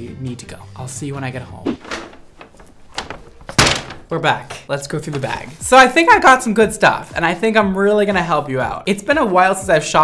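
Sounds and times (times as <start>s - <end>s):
paper bag thud on table: 1.8s - 4.2s.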